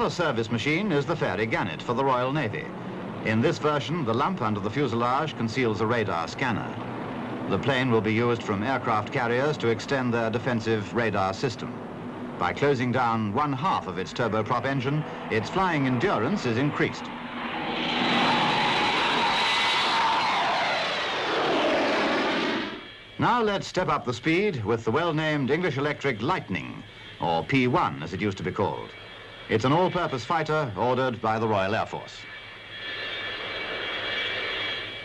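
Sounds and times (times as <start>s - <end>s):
turboprop aircraft flying past: 0.0s - 23.2s
jet engine rush with whine: 0.0s - 35.0s.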